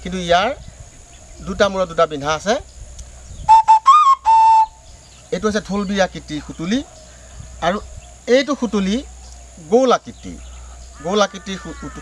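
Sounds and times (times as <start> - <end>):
clay whistle notes: 3.4 - 4.8.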